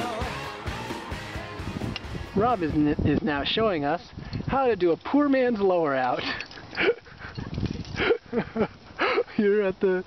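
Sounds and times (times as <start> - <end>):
low rumble: 0.8 - 3.2
person laughing: 6.2 - 7.3, 7.9 - 10.0.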